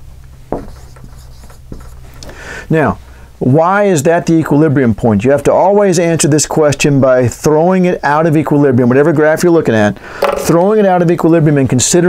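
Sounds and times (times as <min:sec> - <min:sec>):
low steady hum: 0:00.0 - 0:11.7
marker squeaking on whiteboard: 0:00.6 - 0:02.0.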